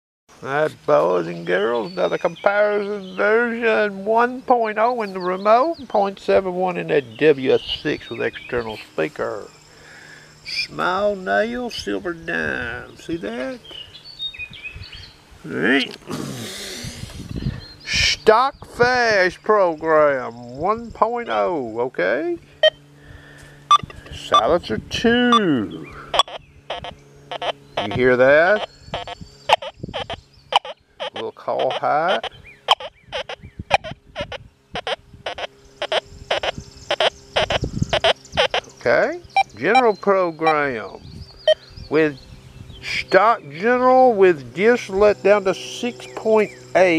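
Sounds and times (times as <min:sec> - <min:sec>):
faint birds chirping: 0:00.3 - 0:46.9
person short vocal sound: 0:15.8 - 0:17.3
metal detector double beeps: 0:23.7 - 0:24.5, 0:26.1 - 0:28.0, 0:28.6 - 0:38.6.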